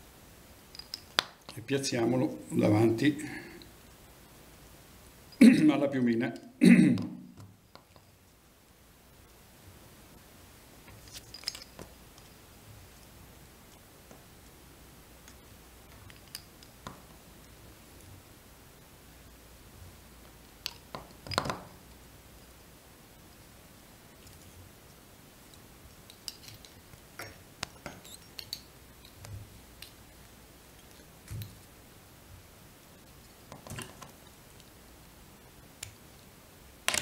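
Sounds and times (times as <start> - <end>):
small clicks and rustles: 0.6 - 1.6, 10.8 - 14.6, 15.2 - 18.2, 24.1 - 31.8.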